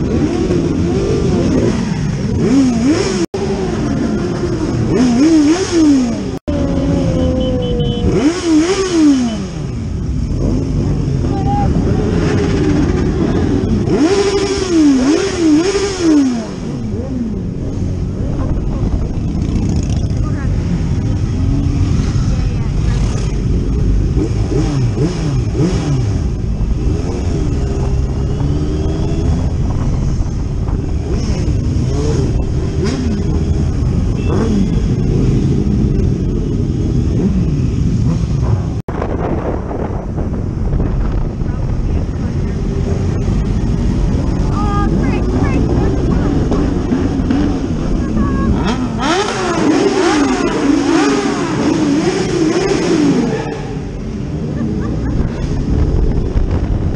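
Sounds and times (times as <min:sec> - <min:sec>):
motorcycle engines running: 0:00.0 - 0:56.9.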